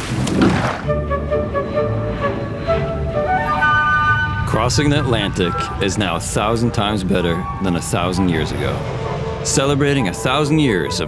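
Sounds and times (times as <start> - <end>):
music of long held notes: 0.8 - 11.0
low rumble: 1.1 - 11.0.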